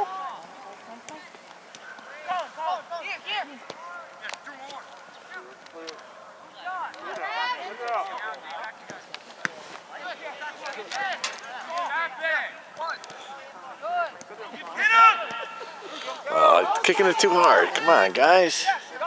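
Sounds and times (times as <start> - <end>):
voices shouting: 1.8 - 8.8, 9.9 - 19.0.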